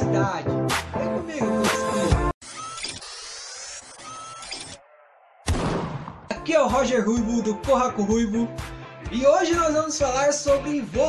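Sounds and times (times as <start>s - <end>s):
loud gunshot-like boom: 5.5s - 6.3s.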